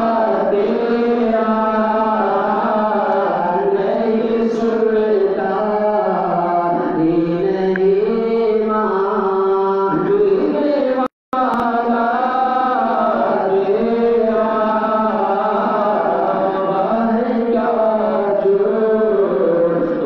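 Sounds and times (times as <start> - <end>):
men singing into microphones: 0.0 - 20.0.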